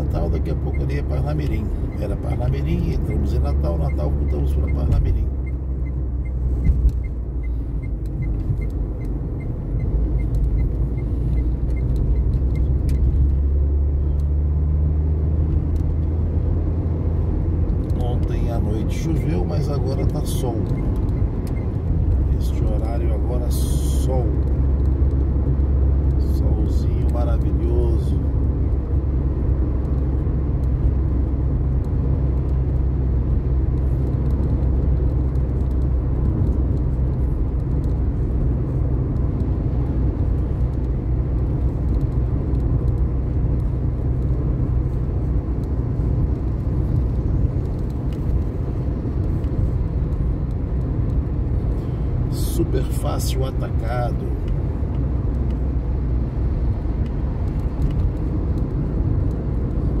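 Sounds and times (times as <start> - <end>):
road and engine noise inside car: 0.0 - 60.0.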